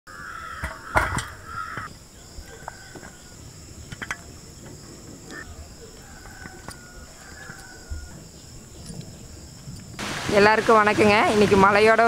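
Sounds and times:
crickets chirring: 0.1s - 12.0s.

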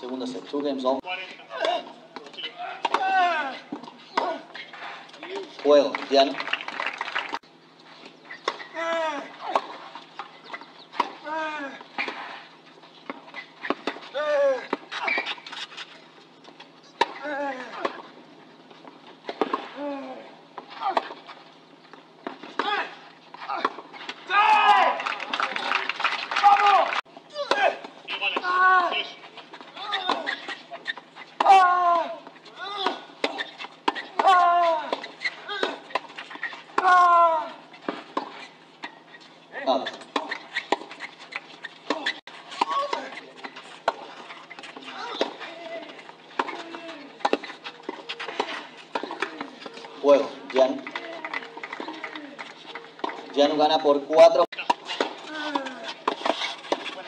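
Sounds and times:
voices in short bursts: 26.4s - 29.2s.

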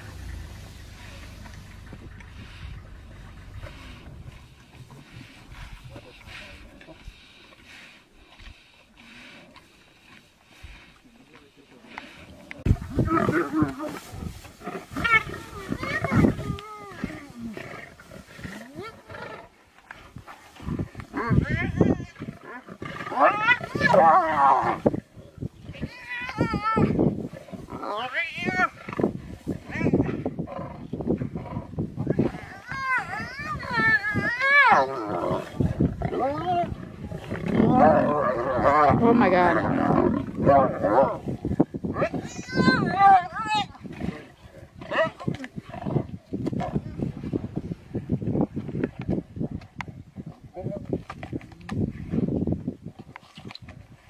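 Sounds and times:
lions growling: 0.0s - 7.8s, 11.8s - 25.8s, 28.7s - 42.3s, 43.8s - 47.2s.

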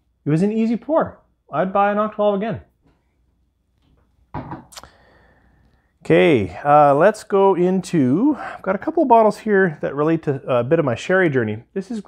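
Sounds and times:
glass bottle set down: 4.3s - 4.7s.

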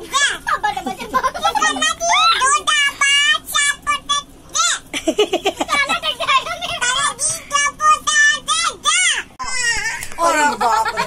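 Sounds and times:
children talking: 0.0s - 11.0s.

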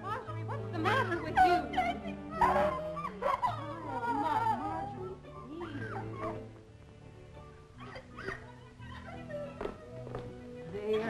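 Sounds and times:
background music: 0.0s - 11.0s
woman whimpering and sobbing: 0.9s - 6.5s, 7.8s - 11.0s.

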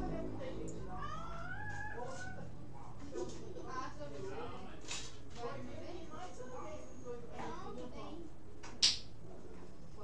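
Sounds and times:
low steady hum: 0.0s - 4.0s.

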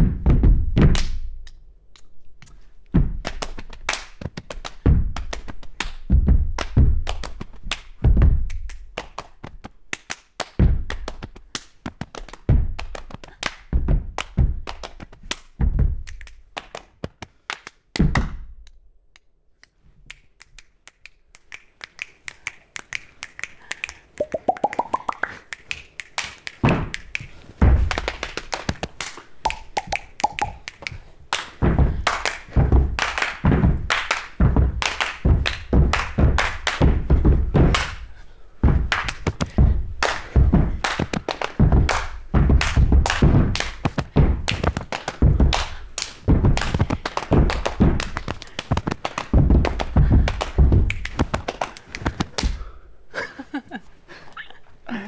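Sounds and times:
hand claps: 0.8s - 38.1s, 38.7s - 52.7s
finger snaps: 1.4s - 2.6s, 18.6s - 27.4s, 29.1s - 31.0s
foot stamps on floor: 2.9s - 3.2s, 6.1s - 7.1s, 29.4s - 37.9s, 38.6s - 52.7s.

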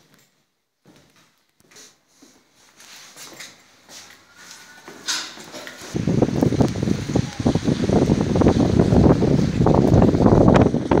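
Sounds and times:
wind buffeting microphone: 5.9s - 11.0s.

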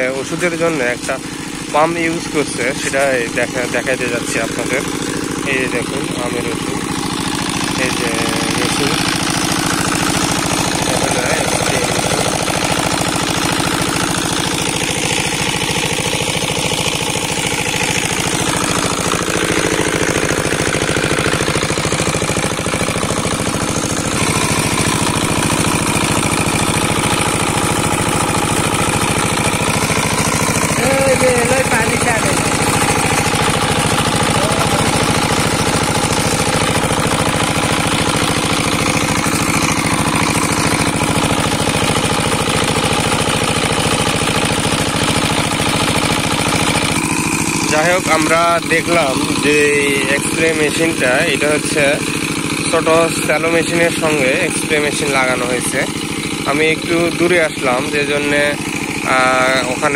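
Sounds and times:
small engine running: 0.0s - 59.9s
sprayer pump pulsing: 0.0s - 59.9s.

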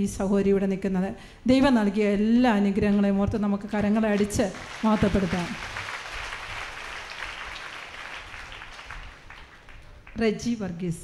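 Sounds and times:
congregation applauding: 4.2s - 10.2s.

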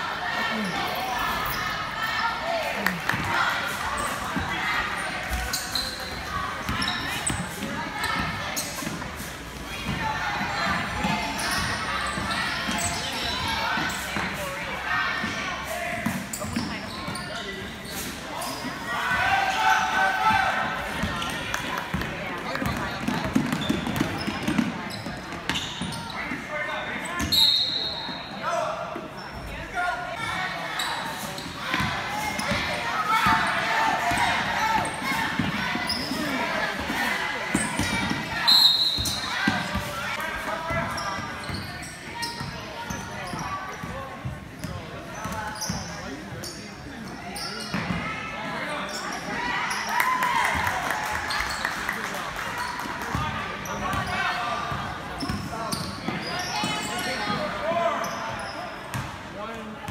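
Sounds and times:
voices in a gym: 0.0s - 59.9s.

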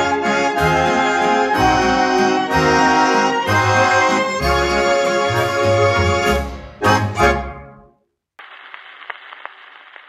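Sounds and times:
record surface hiss and crackle: 8.4s - 10.0s.

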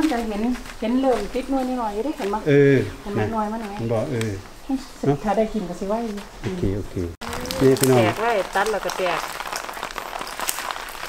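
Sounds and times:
leaves rustling: 0.0s - 11.0s.

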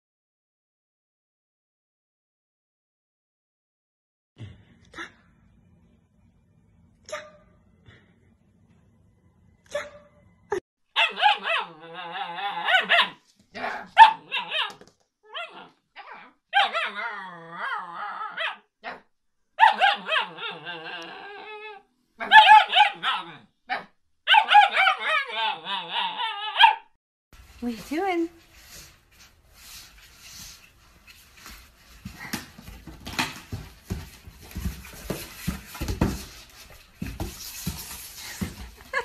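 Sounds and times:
puppy howling and yipping: 11.0s - 19.0s, 19.6s - 26.9s.

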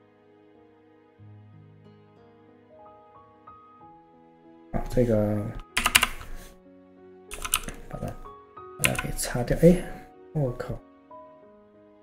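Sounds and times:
soft background music: 0.0s - 12.0s
keyboard keys clicking: 4.8s - 6.6s, 7.3s - 10.0s.

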